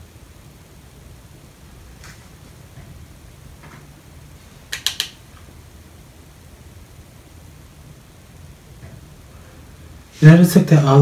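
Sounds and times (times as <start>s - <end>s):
low steady hum: 0.0s - 11.0s
eyeshadow palette clicks: 4.7s - 5.2s.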